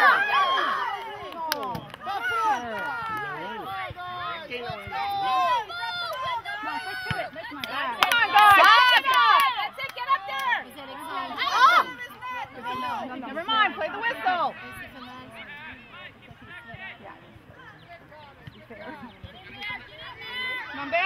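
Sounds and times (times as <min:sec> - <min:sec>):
voices shouting over one another: 0:00.0 - 0:15.8, 0:19.5 - 0:21.0.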